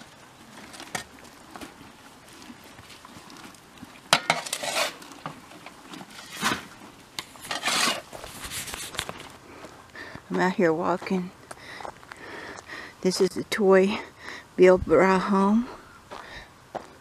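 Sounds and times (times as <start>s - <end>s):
dirt dumped into wheelbarrow: 3.4s - 9.3s
shovel scraping and clanking: 4.1s - 9.3s.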